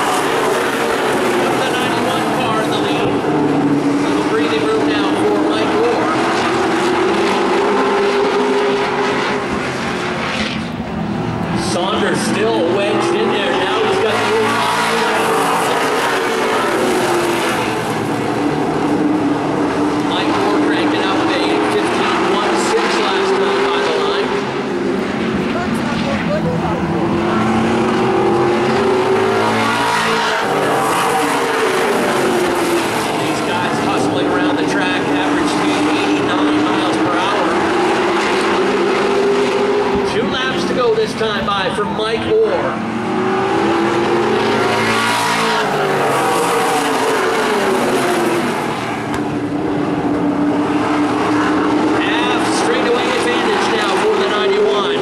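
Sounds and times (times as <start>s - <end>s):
race car engines circling: 0.0s - 55.0s.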